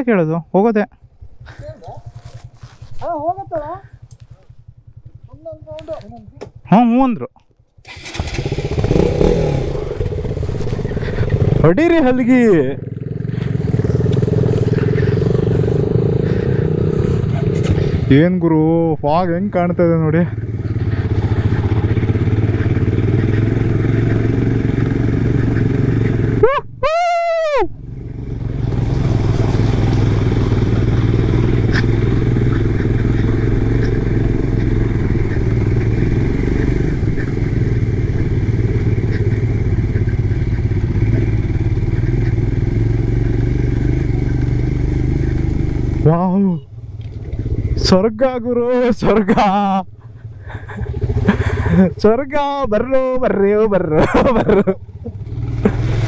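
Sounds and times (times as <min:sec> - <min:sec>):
motorcycle engine running: 0:00.9 - 0:26.6, 0:27.3 - 0:56.0.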